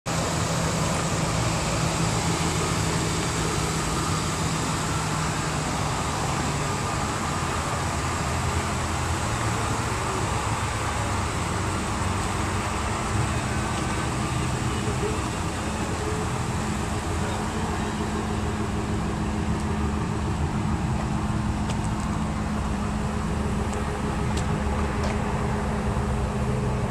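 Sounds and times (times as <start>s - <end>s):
road traffic noise: 0.0s - 26.9s
low engine hum: 0.1s - 26.9s.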